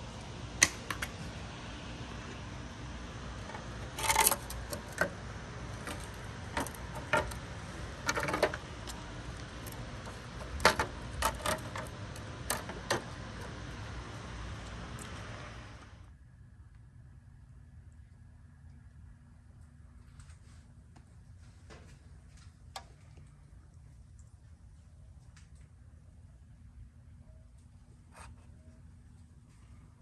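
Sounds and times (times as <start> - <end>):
plastic clicks and clatters: 5.8 - 13.6.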